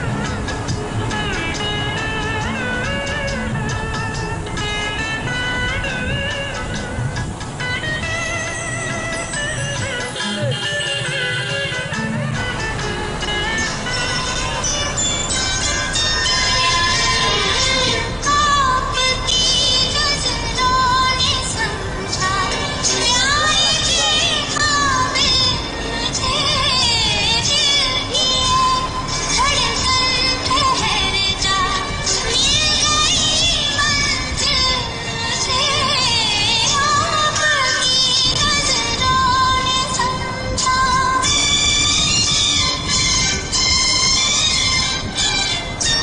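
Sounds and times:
instrumental accompaniment: 0.0s - 46.0s
music with sliding high melody: 0.0s - 46.0s
high singing voice with vibrato: 13.4s - 46.0s.

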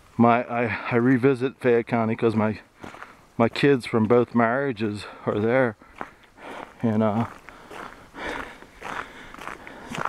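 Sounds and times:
footsteps on slushy snow: 2.2s - 10.0s
man breathing: 2.7s - 3.3s, 5.0s - 10.0s.

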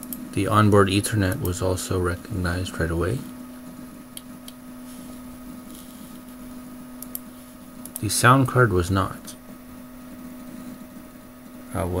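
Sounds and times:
computer machine hum: 0.0s - 12.0s.

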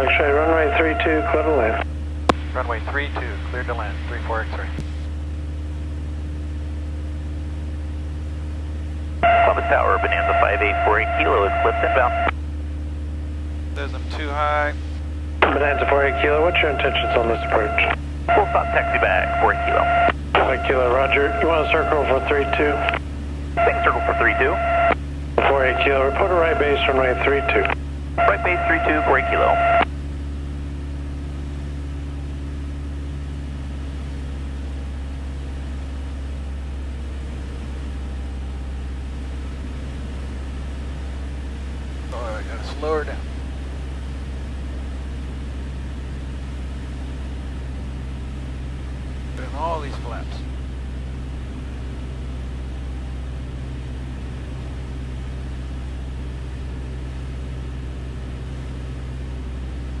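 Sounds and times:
aircraft engine and propeller drone: 0.0s - 60.0s
brief voice sounds: 13.8s - 14.8s.

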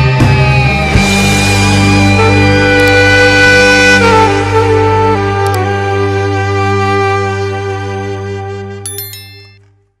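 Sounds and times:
bell-like ding: 8.9s - 9.7s.

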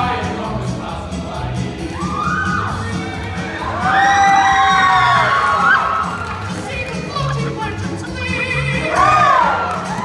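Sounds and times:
audience whooping and cheering: 1.9s - 7.3s, 8.7s - 10.0s.

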